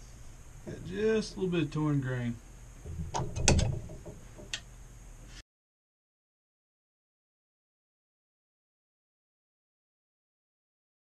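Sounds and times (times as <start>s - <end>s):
metal clicks and clacks: 2.9s - 4.6s.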